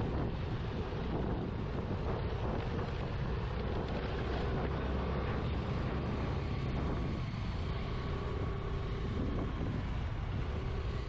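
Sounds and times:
motorcycle engine and road rumble: 0.0 - 11.0
wind rush on microphone: 0.0 - 11.0.

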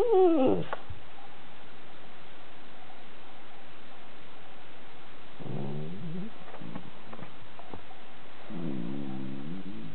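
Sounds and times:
dog moaning and grumbling: 0.0 - 0.8, 5.4 - 7.0, 8.5 - 9.9
dog grunts: 5.4 - 6.9, 8.5 - 9.9.

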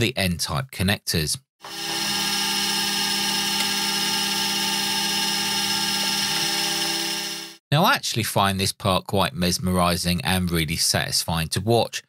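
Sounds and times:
cnc mill spindle whine: 1.7 - 7.5.

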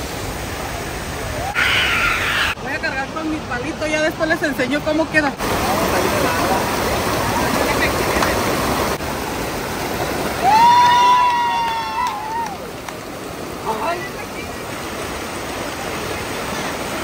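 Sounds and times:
creek water running over rocks: 0.0 - 17.0.

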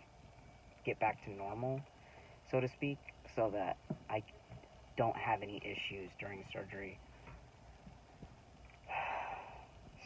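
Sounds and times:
man breathing: 8.8 - 9.9.

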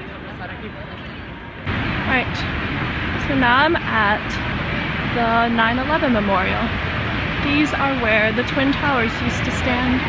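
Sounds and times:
low traffic rumble: 0.0 - 10.0
steady rushing noise: 0.0 - 10.0.

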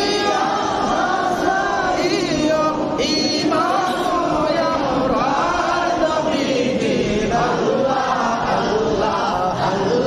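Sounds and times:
men chanting devotional song: 0.0 - 10.0.

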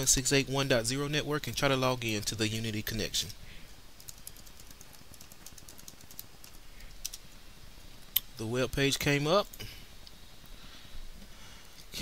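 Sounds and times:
computer keyboard typing: 4.0 - 7.2.

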